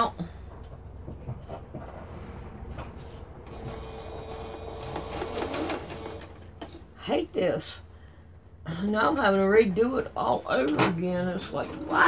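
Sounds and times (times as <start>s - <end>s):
sewing machine motor humming: 3.5s - 6.5s.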